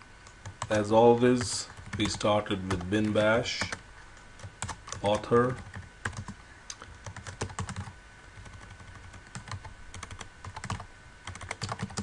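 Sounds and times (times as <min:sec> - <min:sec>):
typing on computer keyboard: 0:04.4 - 0:06.4, 0:07.0 - 0:12.0.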